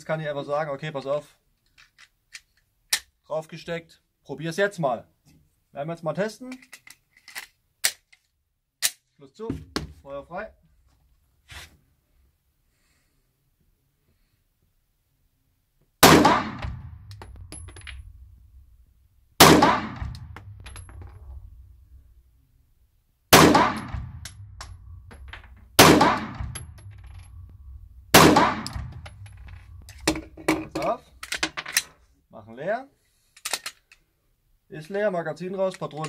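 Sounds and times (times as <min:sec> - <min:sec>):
pistol shots echoing indoors: 0:16.0 - 0:18.1, 0:19.4 - 0:20.7, 0:23.3 - 0:25.1, 0:25.8 - 0:27.2, 0:28.1 - 0:29.2
metallic clicks and clatter: 0:28.6 - 0:32.0.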